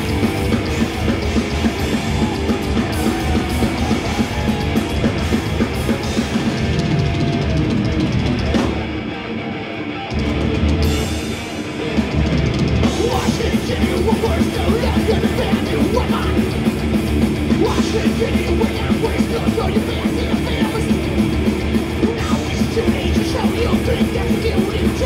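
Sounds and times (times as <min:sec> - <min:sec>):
drum kit: 0:00.0 - 0:09.3, 0:10.1 - 0:25.0
distorted electric guitars: 0:00.0 - 0:25.0.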